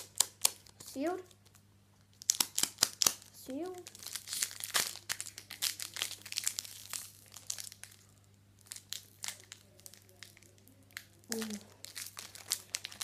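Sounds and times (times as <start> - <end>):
foil wrapper crinkling: 1.3 - 13.0.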